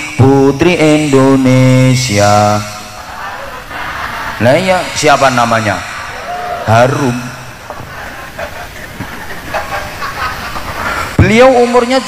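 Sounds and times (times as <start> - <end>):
audience murmur: 2.7 - 11.2.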